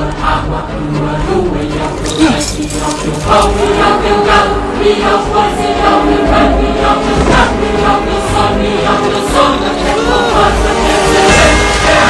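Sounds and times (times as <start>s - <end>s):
choir singing: 0.0s - 12.0s
orchestra playing: 2.0s - 12.0s.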